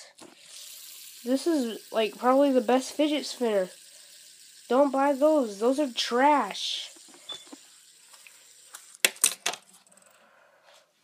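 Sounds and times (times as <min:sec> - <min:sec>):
metal fidget spinner clattering: 0:08.0 - 0:10.2.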